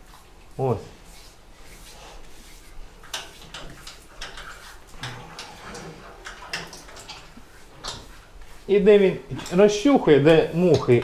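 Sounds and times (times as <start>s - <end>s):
hand rubbing on skin: 0.0s - 5.0s.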